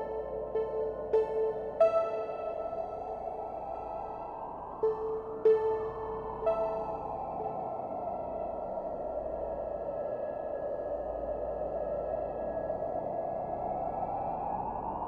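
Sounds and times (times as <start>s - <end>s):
airy synthesizer wash: 0.0s - 9.1s.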